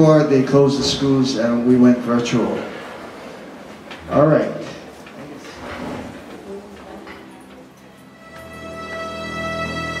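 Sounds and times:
faint murmur of voices: 2.2 - 10.0.

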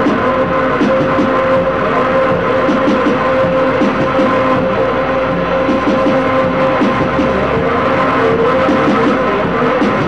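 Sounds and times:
droning tones: 0.0 - 10.0
harsh noise music: 0.0 - 10.0.

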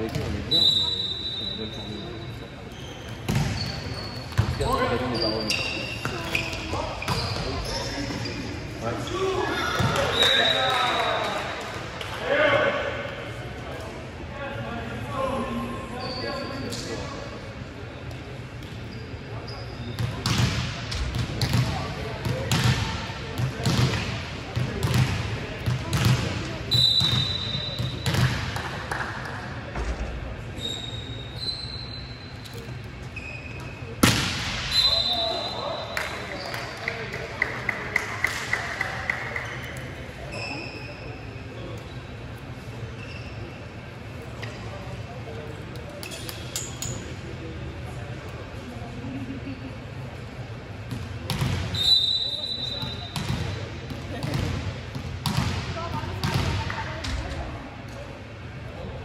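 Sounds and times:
shoes squeaking on floor: 0.5 - 10.6, 30.6 - 33.9, 40.3 - 41.2, 43.0 - 43.6
volleyball bouncing on court: 3.2 - 4.6, 20.0 - 30.0, 50.9 - 51.8, 53.2 - 57.3.

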